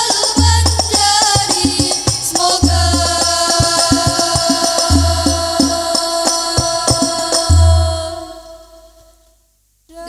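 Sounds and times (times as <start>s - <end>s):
frame drums: 0.0s - 8.0s
girls singing: 0.0s - 9.2s.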